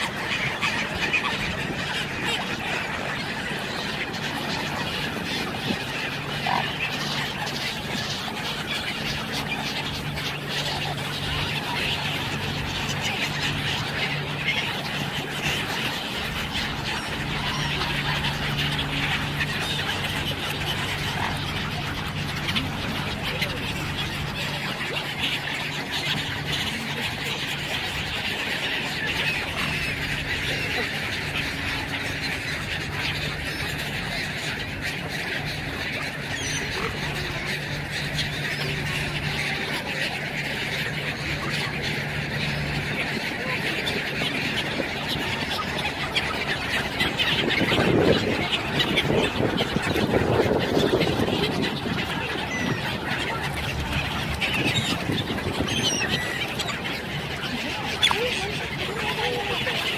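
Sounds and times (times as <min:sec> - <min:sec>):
waterfowl flock calling: 0:00.0 - 0:59.9.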